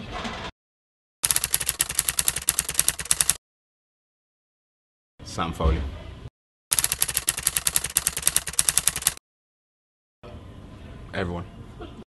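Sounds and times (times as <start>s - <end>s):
typewriter key clicks: 1.2s - 3.4s, 6.7s - 9.2s.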